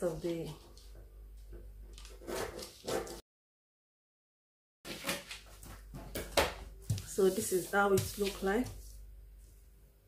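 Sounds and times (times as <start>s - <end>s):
scissors cutting stiff paper: 1.9s - 3.2s.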